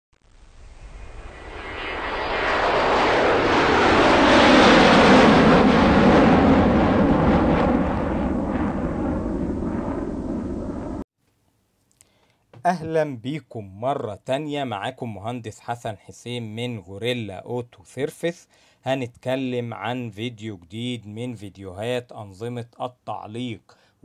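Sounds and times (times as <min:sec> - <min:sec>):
deep rumble: 0:00.2 - 0:11.0.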